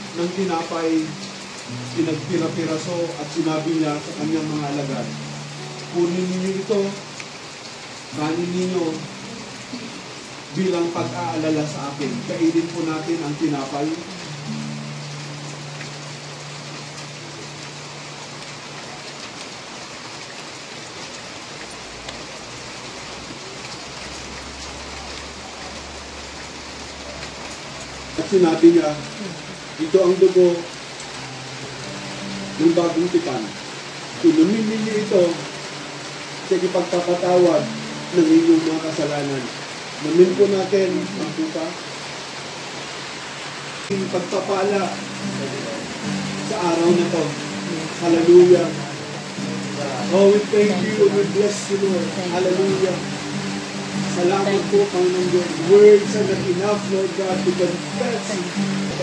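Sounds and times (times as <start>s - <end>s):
steady rain falling: 0.0s - 59.0s.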